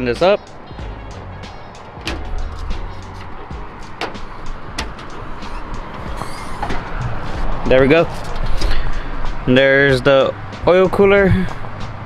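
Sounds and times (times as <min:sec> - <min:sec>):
background music: 0:00.0 - 0:12.0
hood latch clicking: 0:01.7 - 0:08.8.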